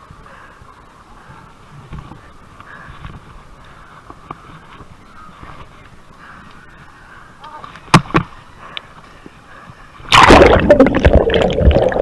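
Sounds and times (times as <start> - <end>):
faint rustling: 0.3 - 10.1.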